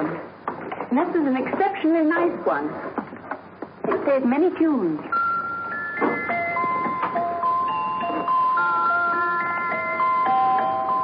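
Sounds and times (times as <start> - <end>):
musical box melody: 5.1 - 11.0.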